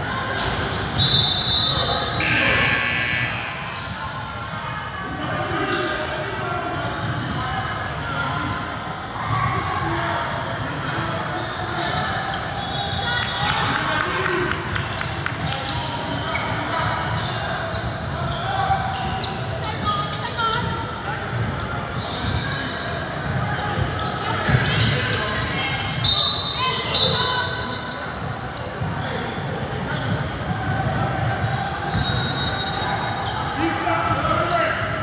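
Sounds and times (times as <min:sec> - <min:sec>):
scattered voices in a gym: 0:00.0 - 0:35.0
ball bouncing on court: 0:23.2 - 0:25.6.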